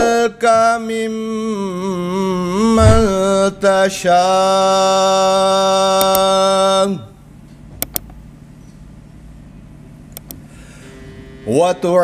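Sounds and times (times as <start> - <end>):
low steady hum: 0.0 - 12.0
quick clicks: 10.2 - 10.4.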